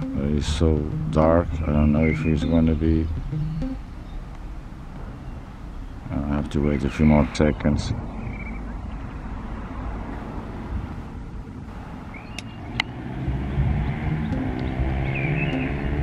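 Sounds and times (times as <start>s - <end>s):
vehicle engine humming: 0.0s - 6.6s, 9.0s - 16.0s
low outdoor rumble: 0.0s - 16.0s
sharp clicks: 14.3s - 16.0s.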